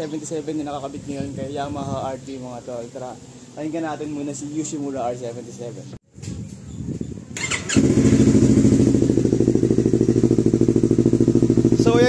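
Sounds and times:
motorcycle engine idling: 0:07.4 - 0:12.0.

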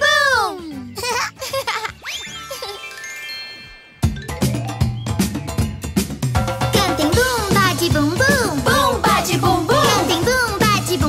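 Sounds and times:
bright bell-like chime notes: 0:02.1 - 0:05.0.

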